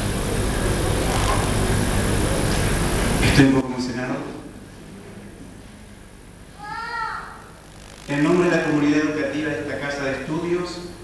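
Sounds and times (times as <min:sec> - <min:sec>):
microphone hiss and hum: 0:00.0 - 0:11.0.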